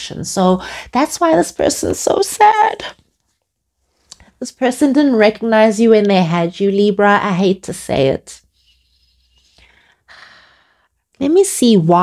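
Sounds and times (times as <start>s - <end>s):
woman's soft breath: 9.6s - 11.0s.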